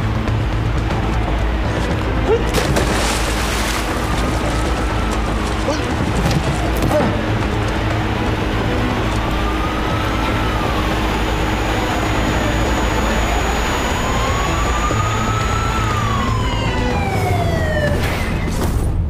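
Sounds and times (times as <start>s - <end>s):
siren wailing: 3.8s - 18.3s.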